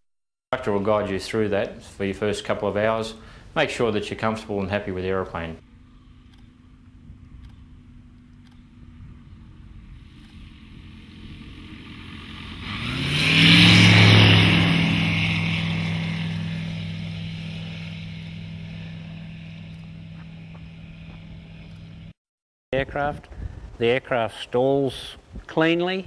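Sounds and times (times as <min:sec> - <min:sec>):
light aircraft fly-by: 0:05.3 - 0:22.2.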